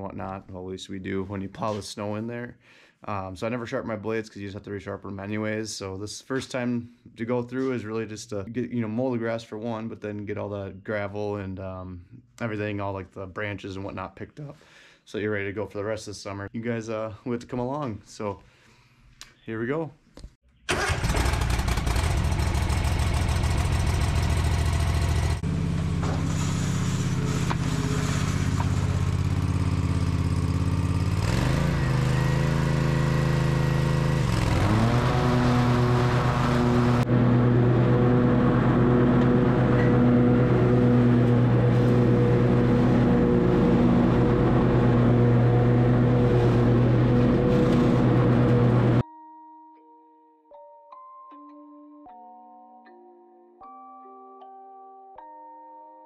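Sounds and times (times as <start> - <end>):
riding mower engine running: 20.7 - 49.0.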